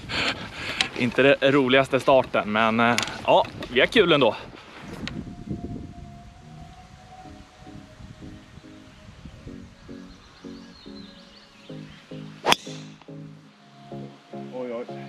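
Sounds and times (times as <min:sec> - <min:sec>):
background music: 0:05.1 - 0:15.0
golf club striking ball: 0:12.4 - 0:13.0.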